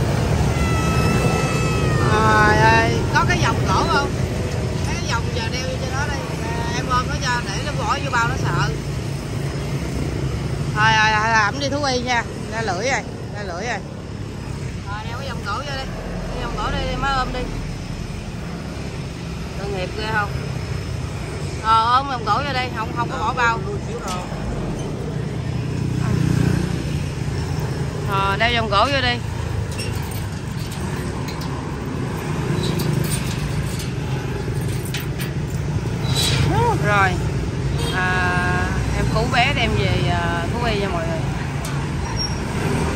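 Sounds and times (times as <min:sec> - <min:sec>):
street traffic rumble: 0:00.0 - 0:42.9
person calling out: 0:00.3 - 0:04.0.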